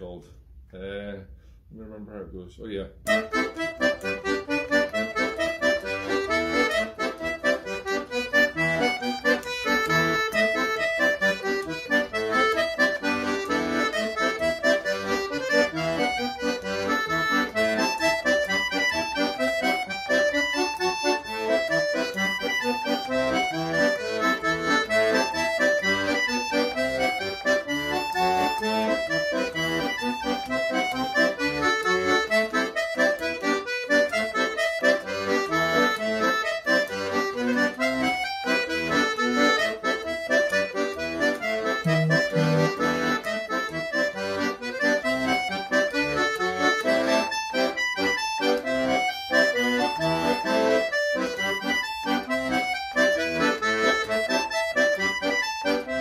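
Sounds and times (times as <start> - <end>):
accordion playing polka tune: 3.0 - 56.0.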